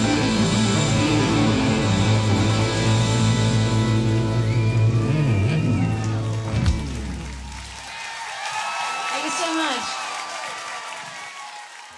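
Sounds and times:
live rock band with electric guitar: 0.0s - 7.8s
audience cheering and whooping: 4.0s - 11.9s.

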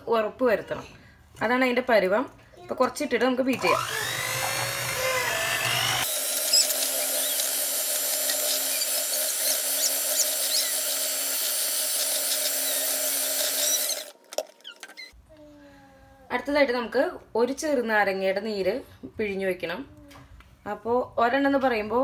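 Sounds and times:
electric hand mixer whisking: 3.5s - 14.2s.

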